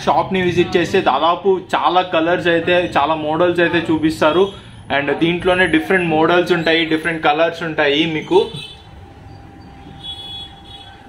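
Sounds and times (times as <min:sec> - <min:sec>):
faint steady hum: 0:00.1 - 0:11.0.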